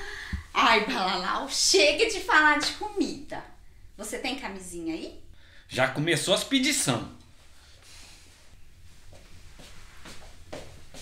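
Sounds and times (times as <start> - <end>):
soft rustles of a shirt: 7.3 - 11.0.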